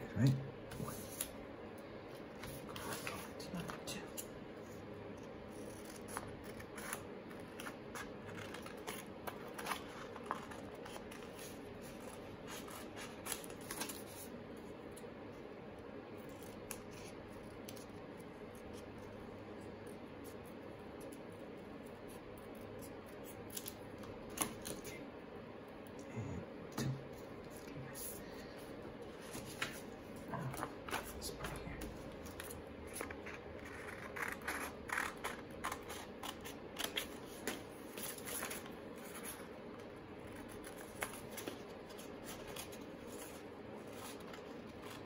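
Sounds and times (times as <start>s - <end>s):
scissors snipping paper: 5.5s - 14.2s, 30.9s - 38.6s.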